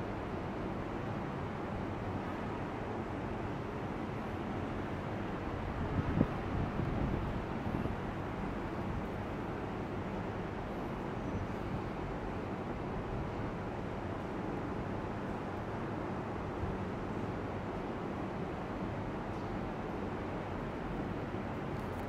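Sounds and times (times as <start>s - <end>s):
outdoor background noise: 0.0s - 22.0s.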